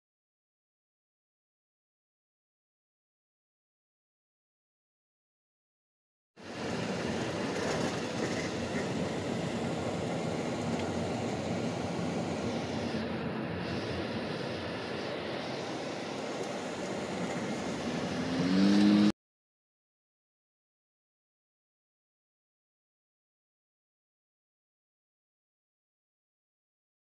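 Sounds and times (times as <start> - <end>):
car road and engine noise: 6.4 - 19.2
loud rising tone: 17.7 - 19.2.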